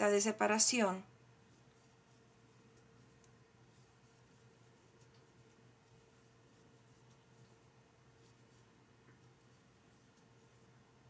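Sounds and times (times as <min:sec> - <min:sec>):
faint steady hum: 0:00.0 - 0:11.0
yarn rustling through stitches: 0:00.0 - 0:11.0.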